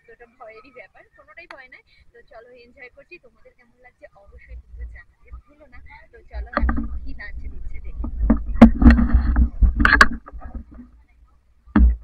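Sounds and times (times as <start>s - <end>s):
faint voices: 0.0s - 12.0s
person speaking: 0.0s - 12.0s
low rumble on microphone: 4.3s - 12.0s.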